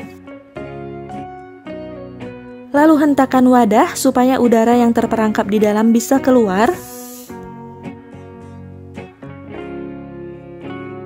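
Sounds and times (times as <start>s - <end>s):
acoustic guitar playing: 4.8s - 11.0s.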